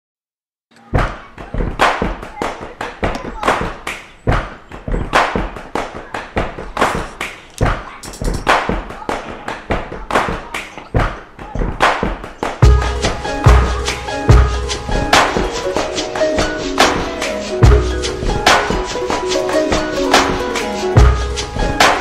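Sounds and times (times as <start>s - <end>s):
percussive rap beat: 0.8s - 22.0s.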